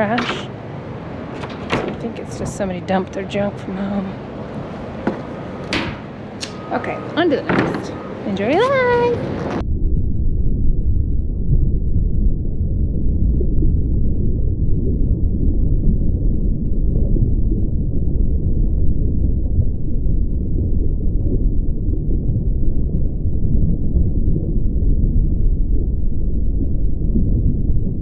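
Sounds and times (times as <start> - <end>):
deep muffled rumble: 1.4 - 5.6, 8.2 - 28.0.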